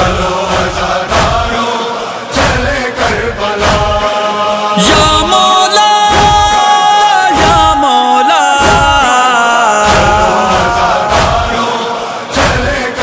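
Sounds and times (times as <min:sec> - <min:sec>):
men chanting a lament: 0:00.0 - 0:13.0
steady rhythmic thumps: 0:00.0 - 0:13.0.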